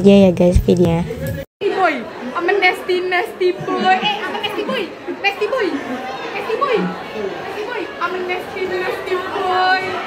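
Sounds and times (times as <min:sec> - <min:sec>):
indistinct chatter: 0:01.2 - 0:10.0.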